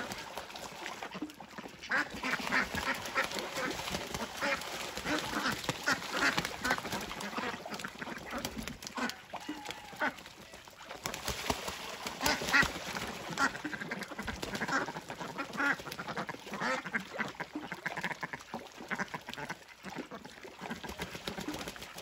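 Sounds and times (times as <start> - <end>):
ducks quacking: 0.0 - 10.6, 12.1 - 21.9.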